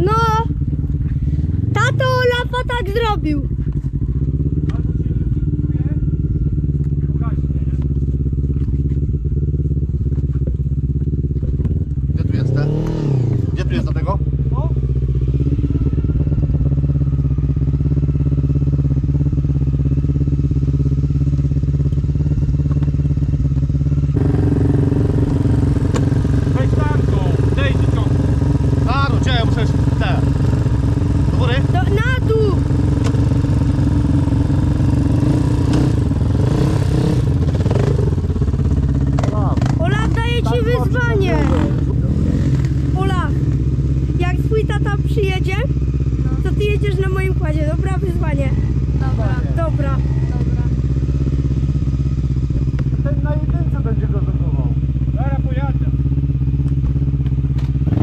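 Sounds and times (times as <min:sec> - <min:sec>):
quad engine revving: 0:00.0 - 0:58.0.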